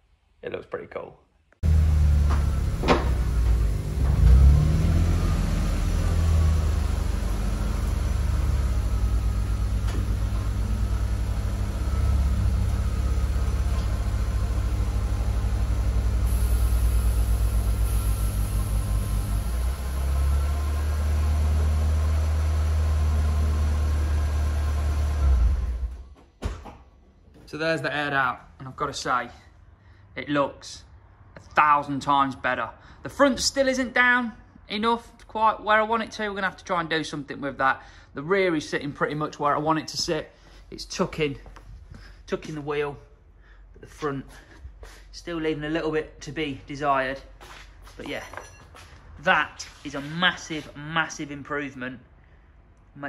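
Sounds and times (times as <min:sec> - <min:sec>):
car engine running: 0:01.6 - 0:25.9.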